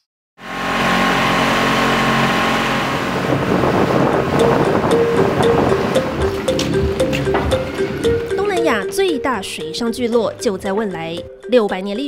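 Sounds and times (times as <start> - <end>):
outboard motor running: 0.4 - 9.2
water rushing past hull: 0.8 - 8.4
background music with beat: 4.3 - 12.0.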